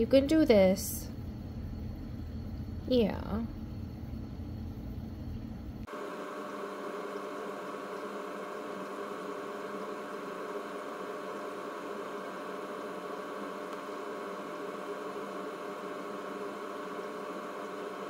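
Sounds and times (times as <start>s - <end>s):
steady machine hum: 0.0s - 18.0s.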